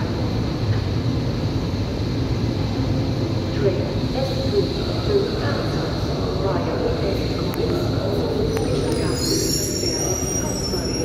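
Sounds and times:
electric train rumbling: 0.0s - 11.0s
high-pitched brake squeal: 8.5s - 11.0s.

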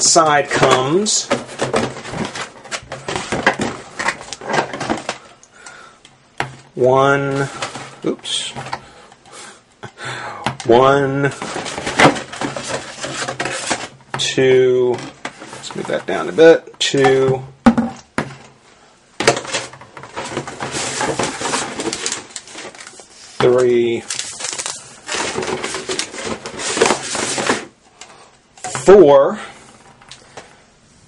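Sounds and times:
packaging rustling and crinkling: 0.4s - 5.4s, 11.2s - 14.0s, 19.2s - 27.7s
rustling in cardboard box: 19.4s - 23.4s, 24.0s - 27.7s.

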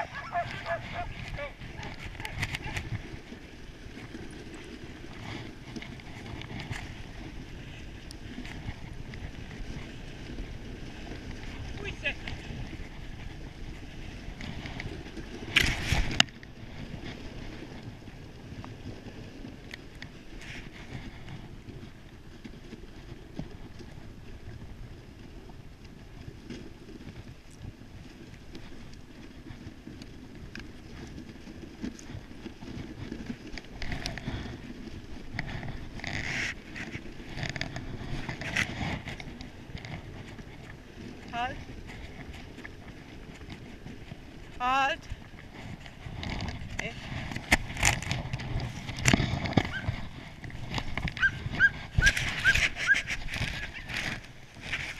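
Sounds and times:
sled runners rushing over snow: 0.0s - 54.9s
wind on microphone: 0.0s - 54.9s
crunching scrape: 30.6s - 44.6s, 45.2s - 54.9s.

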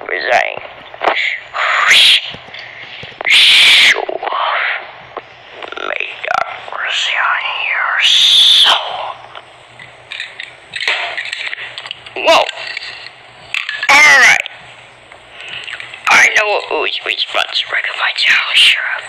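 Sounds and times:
harsh vocal bursts: 1.1s - 5.0s.

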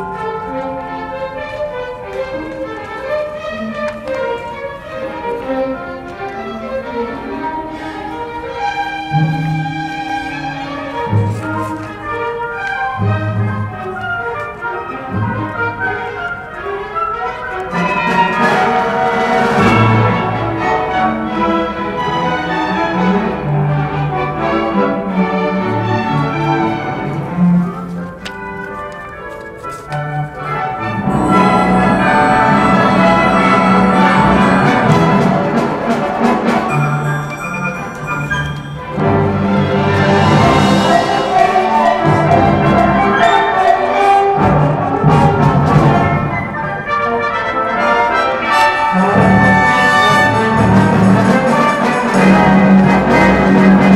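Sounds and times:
orchestra playing strings and brass: 0.0s - 53.9s.

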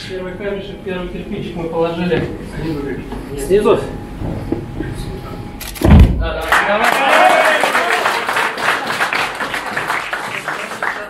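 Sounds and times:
men shouting: 6.7s - 8.3s.

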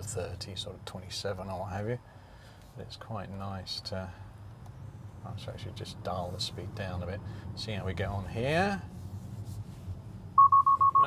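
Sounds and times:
low road hum: 0.0s - 11.0s
rapid high alert beeps: 10.4s - 11.0s.

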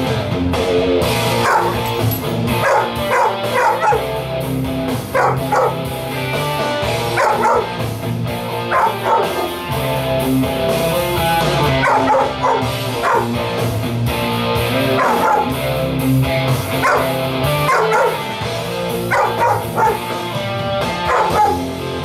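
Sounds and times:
electric guitar rock music: 0.0s - 22.0s
dog howling: 1.4s - 1.8s, 2.6s - 4.1s, 5.2s - 5.8s, 7.2s - 7.8s, 8.7s - 9.6s, 11.7s - 13.4s, 14.8s - 15.6s, 16.8s - 18.3s, 19.1s - 20.1s, 21.1s - 21.7s.

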